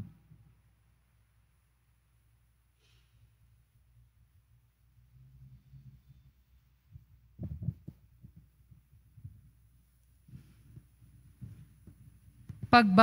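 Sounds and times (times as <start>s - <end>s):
faint low hum: 0.0s - 13.0s
dull low thumps: 6.9s - 9.7s.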